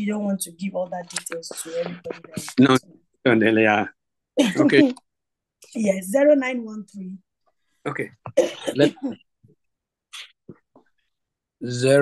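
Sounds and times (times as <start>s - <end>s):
woman clearing throat: 8.3s - 9.2s
woman coughing: 8.3s - 9.2s.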